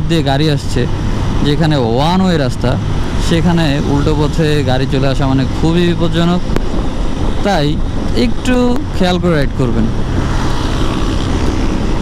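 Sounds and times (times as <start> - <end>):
motorcycle engine hum: 0.0 - 12.0
wind and road noise: 0.0 - 12.0.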